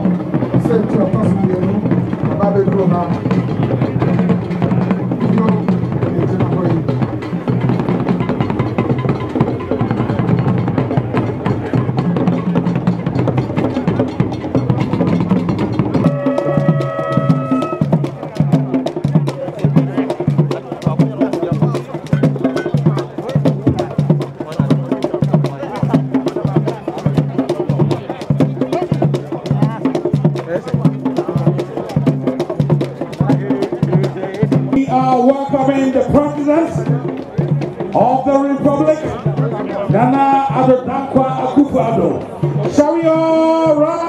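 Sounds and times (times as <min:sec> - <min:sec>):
drumming and percussion: 0:00.0 - 0:44.0
held tone: 0:16.0 - 0:17.9.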